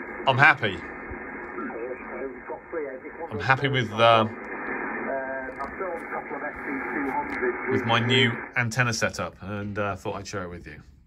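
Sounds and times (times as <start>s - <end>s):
radio band hiss: 0.0s - 10.8s
faint radio voice: 1.6s - 8.5s.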